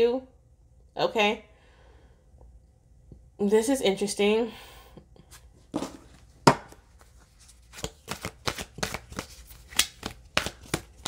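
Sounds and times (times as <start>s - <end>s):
cards being shuffled: 5.3s - 11.0s.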